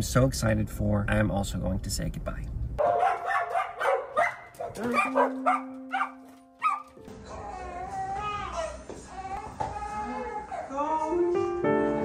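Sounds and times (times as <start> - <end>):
people talking: 0.0 - 2.5
dog barking: 2.8 - 7.0.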